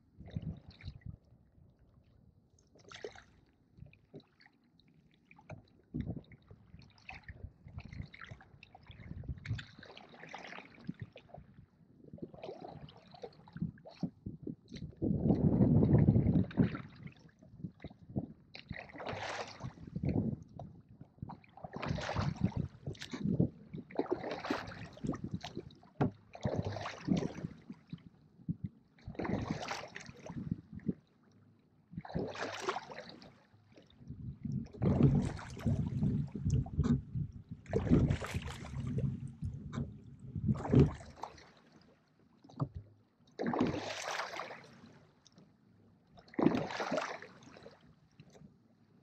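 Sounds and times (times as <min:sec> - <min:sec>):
oars splashing in water: 0:02.8 - 0:03.4, 0:06.9 - 0:11.4, 0:18.6 - 0:20.1, 0:21.6 - 0:27.9, 0:29.1 - 0:30.5, 0:32.0 - 0:33.9, 0:34.7 - 0:41.8, 0:43.4 - 0:45.0, 0:46.2 - 0:47.8.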